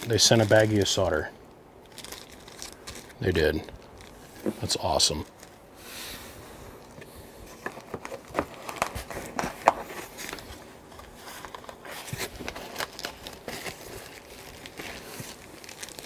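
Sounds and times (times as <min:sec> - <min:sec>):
plastic wrap crinkling: 0:00.0 - 0:05.7, 0:06.8 - 0:16.0
cardboard rustling: 0:07.4 - 0:16.0.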